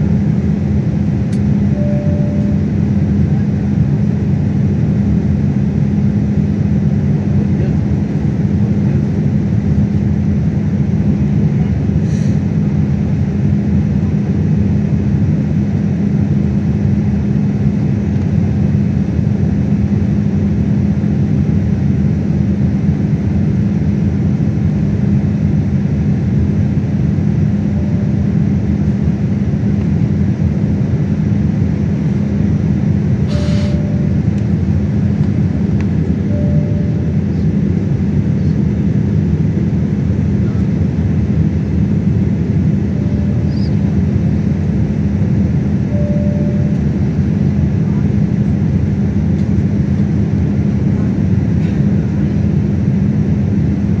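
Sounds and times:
jet engine cabin drone: 0:00.0 - 0:54.0
steady low hum: 0:00.0 - 0:54.0.

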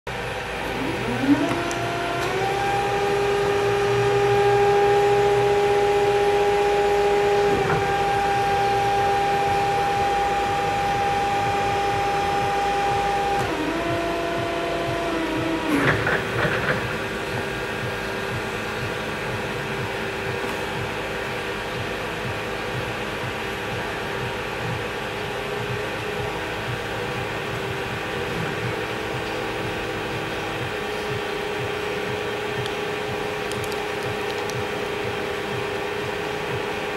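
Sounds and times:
faint steady hum: 0:00.1 - 0:36.9
hydraulic pump motor whining: 0:00.1 - 0:36.9
forklift mast clanking: 0:15.6 - 0:18.2.

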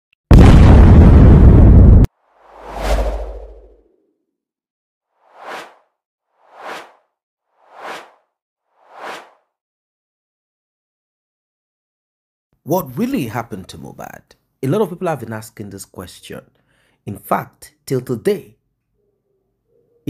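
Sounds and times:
low boom: 0:00.3 - 0:03.7
whoosh: 0:02.3 - 0:03.9
short whooshes: 0:02.4 - 0:03.9, 0:05.3 - 0:07.0, 0:07.6 - 0:08.2, 0:08.8 - 0:09.4.

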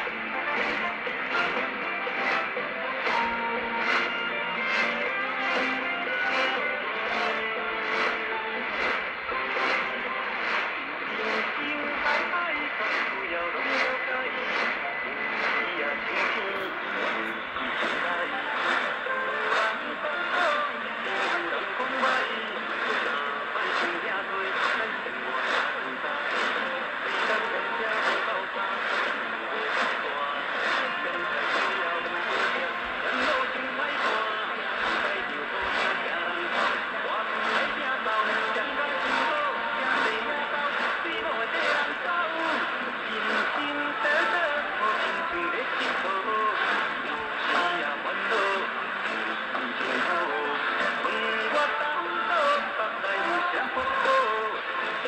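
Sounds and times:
radio speech: 0:00.0 - 0:55.0.

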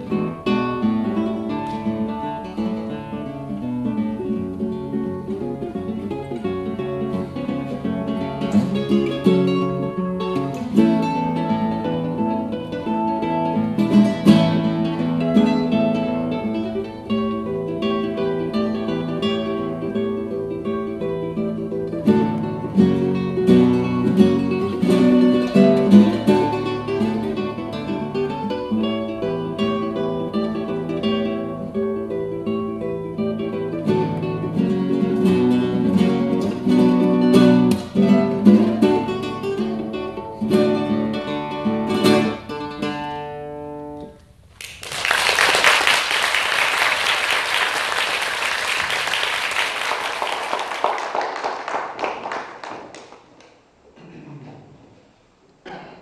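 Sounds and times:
classical guitar fingerstyle: 0:00.0 - 0:44.5
audience applause: 0:44.6 - 0:53.5.

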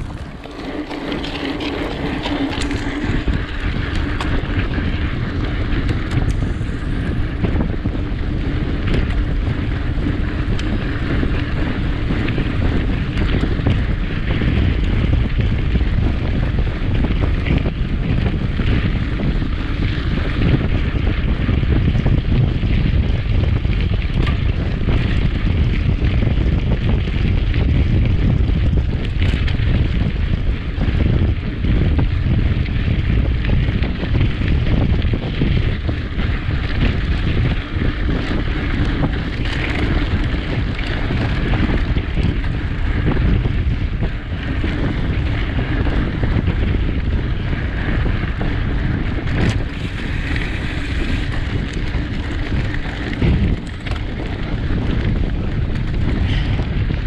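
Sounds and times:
tyres rolling over gravel: 0:00.0 - 0:57.0
wind buffeting microphone: 0:00.0 - 0:57.0.

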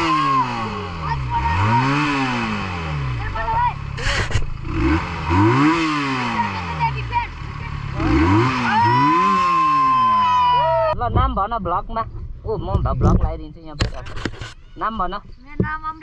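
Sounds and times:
excited children's voices: 0:00.0 - 0:02.4, 0:03.1 - 0:03.8, 0:06.2 - 0:11.0, 0:14.5 - 0:16.0
motorcycle engine revving: 0:00.0 - 0:11.0.

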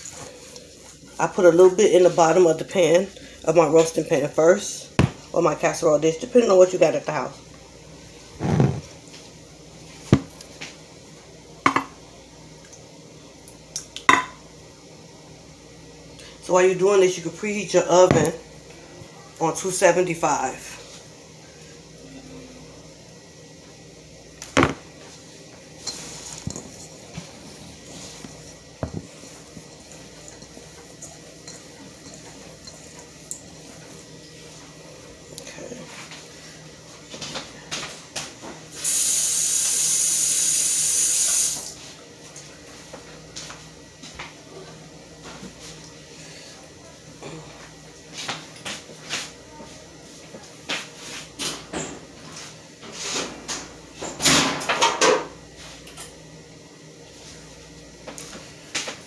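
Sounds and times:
kitchen tap running: 0:38.8 - 0:41.7.

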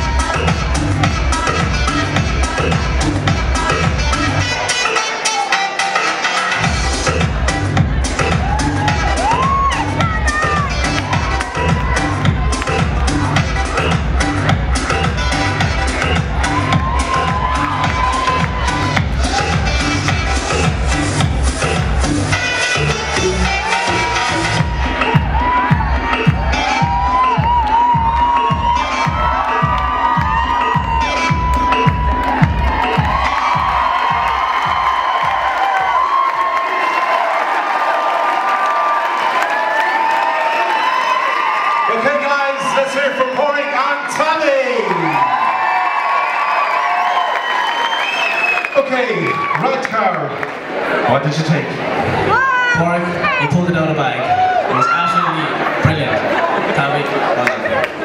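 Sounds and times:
dance music with steady beat: 0:00.0 - 0:36.5
audience cheering and shouting: 0:00.0 - 0:58.0.

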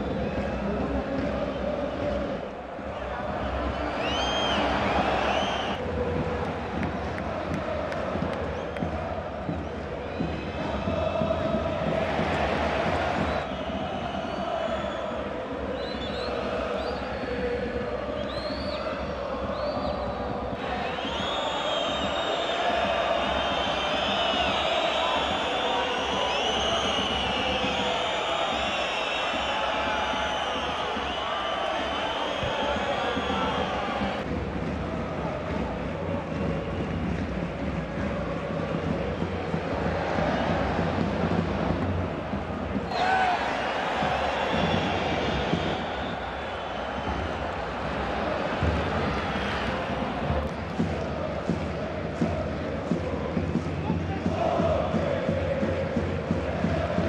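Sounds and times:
crowd roaring: 0:02.1 - 0:09.5, 0:20.6 - 0:34.3, 0:39.5 - 0:53.0
shrill whistles: 0:03.6 - 0:05.8, 0:13.1 - 0:17.3, 0:18.2 - 0:34.2, 0:42.9 - 0:47.6.

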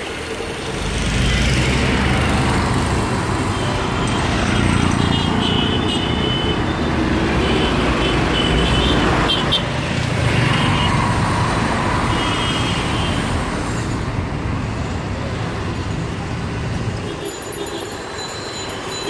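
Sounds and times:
traffic engines rumbling past: 0:00.0 - 0:19.0.

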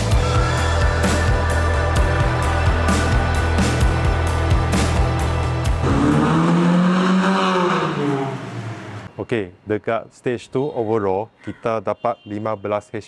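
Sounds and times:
background music with a beat: 0:00.0 - 0:06.0
car engine driving past: 0:05.8 - 0:09.1.

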